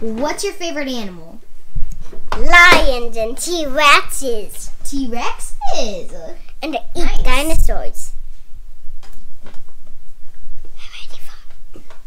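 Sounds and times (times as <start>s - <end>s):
person whispering: 10.8s - 11.6s.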